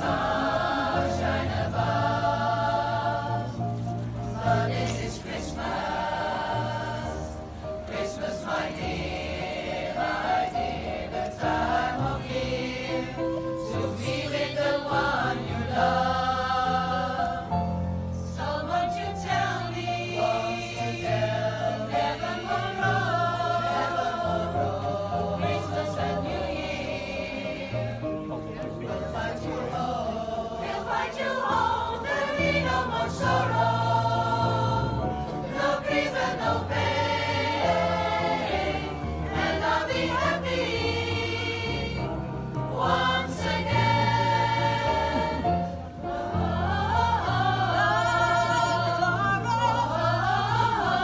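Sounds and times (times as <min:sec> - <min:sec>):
choir singing a slow ballad: 0:00.0 - 0:51.0
musical backing with bass line: 0:00.0 - 0:51.0.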